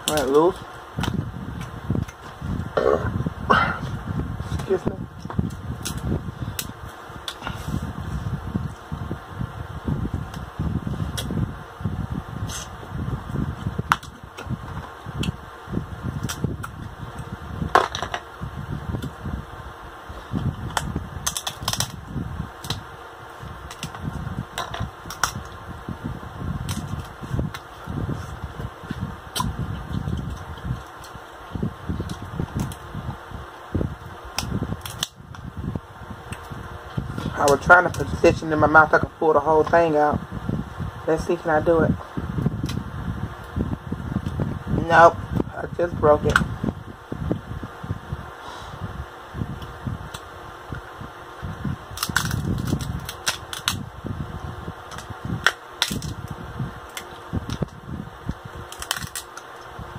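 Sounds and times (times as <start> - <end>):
crab shells cracking: 20.6 - 22.0, 22.6 - 22.8, 23.6 - 25.6, 26.6 - 27.7, 34.3 - 35.3, 51.9 - 53.9, 54.9 - 56.3, 56.9 - 59.7.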